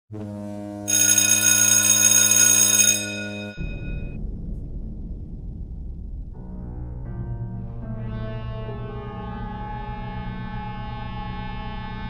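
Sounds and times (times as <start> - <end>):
high ringing tone: 0.9 - 4.2
low rumbling noise: 3.6 - 9.6.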